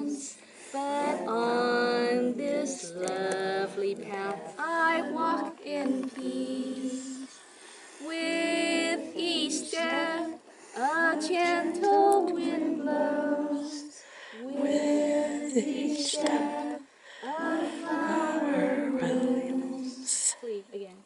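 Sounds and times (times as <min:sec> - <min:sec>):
woman singing unaccompanied: 0:00.0 - 0:07.4, 0:08.0 - 0:20.3.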